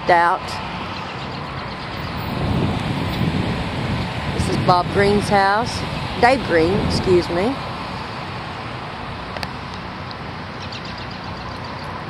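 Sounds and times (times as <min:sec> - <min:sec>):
steady outdoor hiss: 0:00.0 - 0:12.0
wind buffeting microphone: 0:00.5 - 0:10.0.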